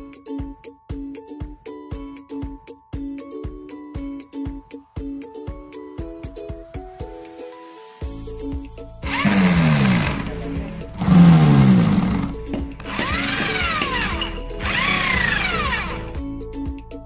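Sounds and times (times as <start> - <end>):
electric drill boring: 9.0 - 16.2.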